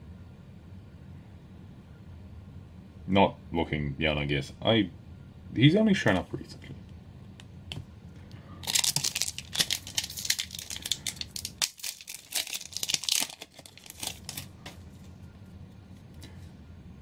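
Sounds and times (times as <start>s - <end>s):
foil wrapper tearing and crinkling: 8.6s - 14.6s.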